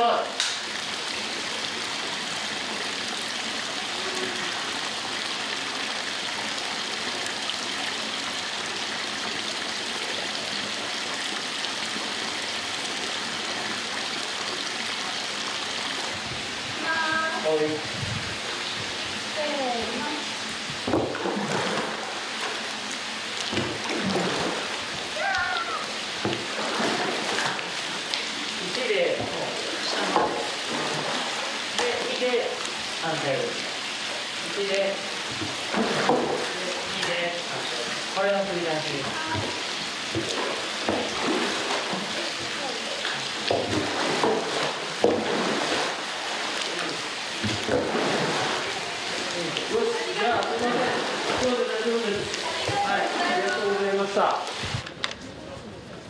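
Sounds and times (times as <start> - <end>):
paddle splashing bath water: 17.9 - 55.0.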